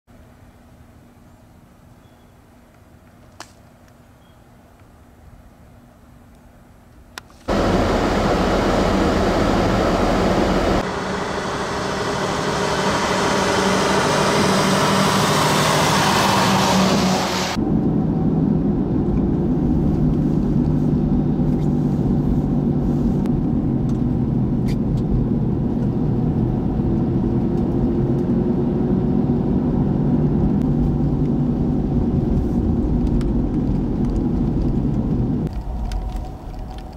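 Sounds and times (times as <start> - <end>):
truck engine running: 7.5 - 19.0.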